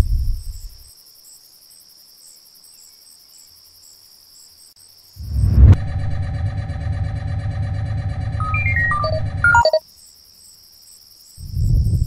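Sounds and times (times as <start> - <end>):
wind rumble on microphone: 0.0 - 0.8, 5.2 - 6.7, 11.4 - 12.0
insects chirping: 0.0 - 12.0.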